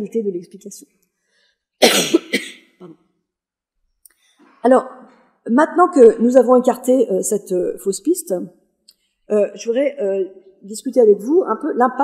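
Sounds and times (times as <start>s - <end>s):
woman coughing: 1.8s - 3.1s.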